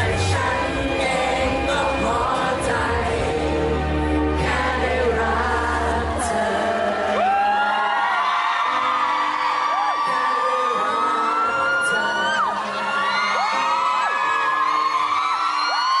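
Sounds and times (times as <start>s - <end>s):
man singing: 0.0s - 3.7s, 9.8s - 14.4s
fans screaming and whooping: 6.7s - 16.0s.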